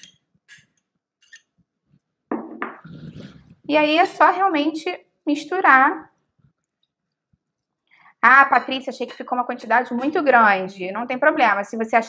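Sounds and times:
spoon scraping ceramic bowl: 0.0 - 1.6
bowl knocking on wooden table: 2.3 - 2.8.

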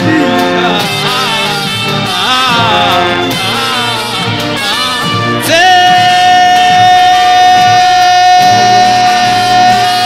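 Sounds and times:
brass band long note: 0.0 - 10.0
low beat: 0.0 - 10.0.

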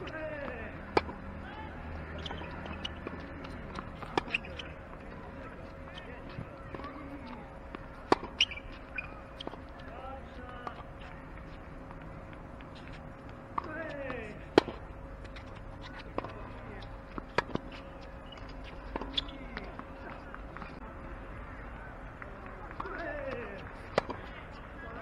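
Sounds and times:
tennis ball struck with racket: 8.0 - 8.6.

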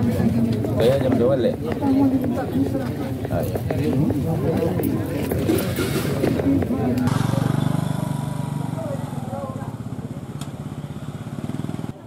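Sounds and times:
crowd voices: 0.0 - 12.0
vehicle engine running: 6.6 - 12.0.

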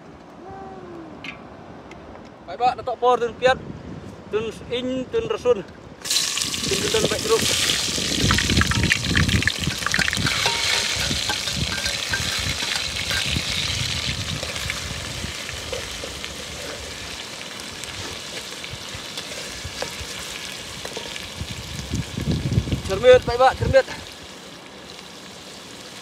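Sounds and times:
onions sizzling in hot oil: 6.0 - 26.0
metal spoon scraping pot: 9.6 - 13.4.

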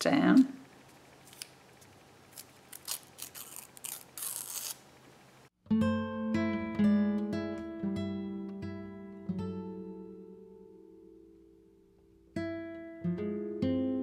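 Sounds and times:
tape and paper rustling: 1.2 - 4.9
plucked acoustic guitar music: 5.6 - 11.0, 12.3 - 14.0.

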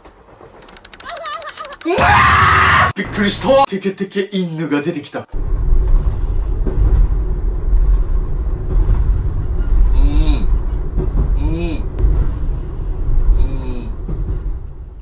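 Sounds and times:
train carriage rumbling: 0.0 - 2.4, 5.3 - 15.0.

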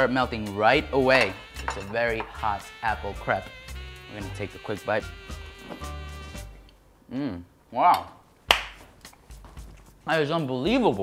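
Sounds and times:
sharp snap: 7.9 - 9.2.

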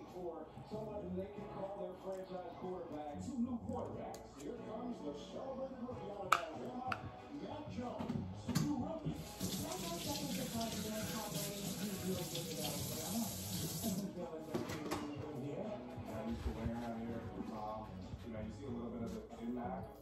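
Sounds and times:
faucet running water: 9.2 - 14.1.

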